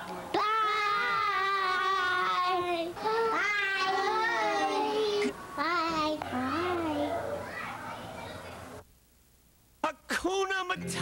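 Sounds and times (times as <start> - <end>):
young child's wordless voice: 0.4 - 8.8.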